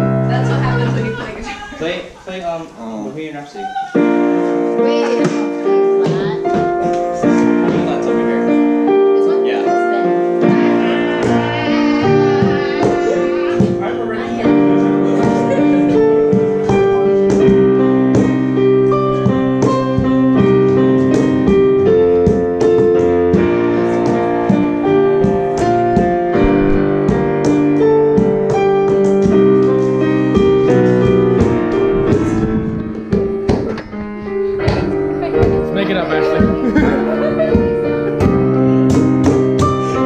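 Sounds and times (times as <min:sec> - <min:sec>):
digital piano chordal piece: 0:00.0 - 0:02.0, 0:02.7 - 0:40.0.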